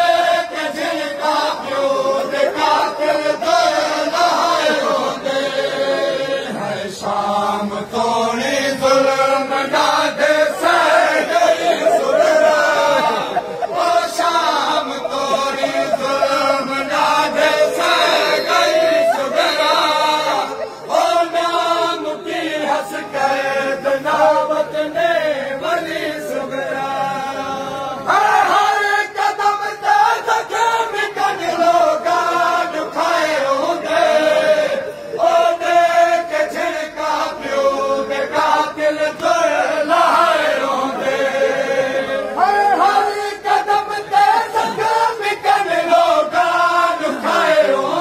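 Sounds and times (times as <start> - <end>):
men chanting a lament: 0.0 - 48.0.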